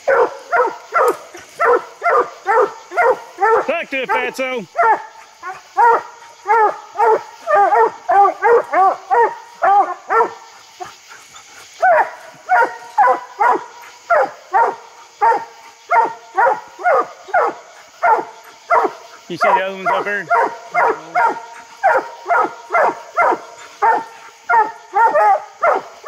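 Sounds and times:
hounds barking: 0:00.0 - 0:26.0.

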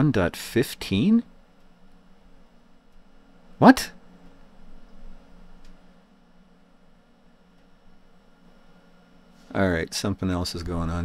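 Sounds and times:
faint low hum: 0:00.0 - 0:11.0
faint click: 0:05.6 - 0:05.8.

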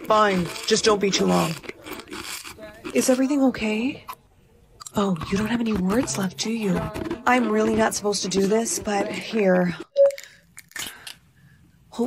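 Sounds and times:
brief loud tone: 0:09.9 - 0:10.2.

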